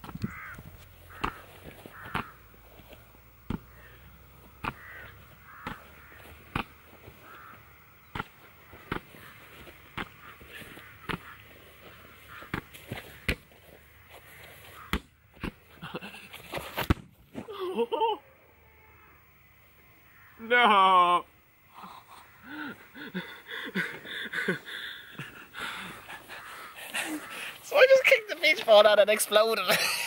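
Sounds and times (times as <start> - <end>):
bird calls: 0.2 - 2.4, 3.6 - 15.2, 20.0 - 20.4, 21.8 - 28.0
beach ball being hit: 1.2 - 1.4, 8.9 - 9.1, 14.9 - 15.6.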